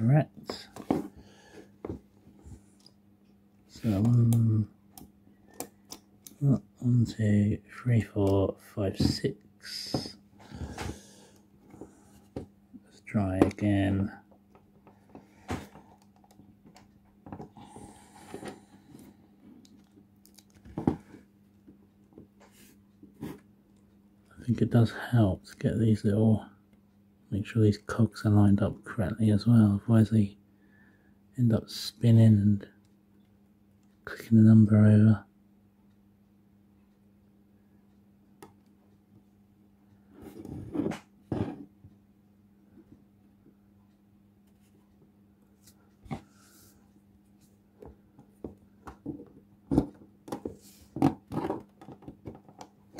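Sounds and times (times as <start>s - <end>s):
rubbing and scraping of plastic wheels: 49.0s - 52.6s.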